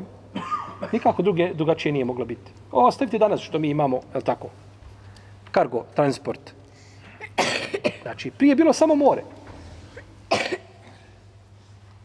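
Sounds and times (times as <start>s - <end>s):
faint steady hum: 0.0s - 12.0s
man coughing: 0.3s - 1.2s, 7.0s - 8.2s, 9.9s - 11.2s.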